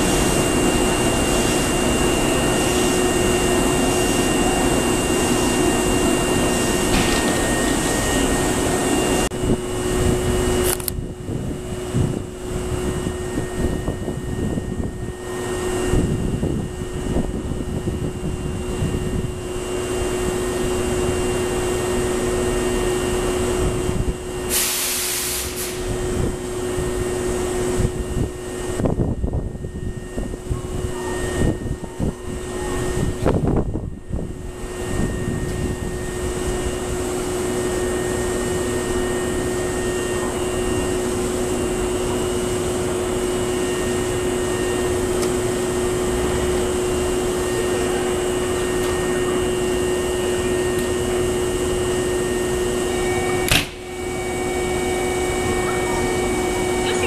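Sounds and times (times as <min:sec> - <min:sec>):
electric train equipment hum: 0:00.0 - 0:57.0
compressed-air hiss: 0:24.5 - 0:25.9.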